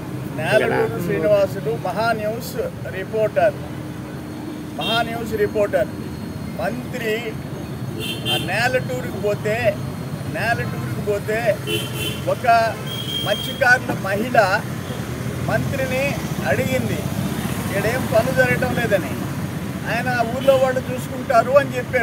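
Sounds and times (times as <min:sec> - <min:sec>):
man speaking into microphone: 0:00.3 - 0:03.6, 0:04.8 - 0:05.9, 0:06.6 - 0:07.4, 0:08.3 - 0:11.7, 0:12.3 - 0:14.7, 0:15.5 - 0:17.1, 0:17.7 - 0:19.2, 0:19.8 - 0:22.0.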